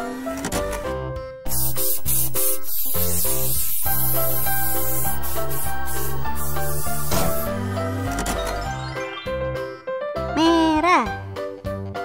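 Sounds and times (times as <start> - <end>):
cheerful children's music: 0.2 - 12.0
paint sprayer hissing: 1.5 - 7.6.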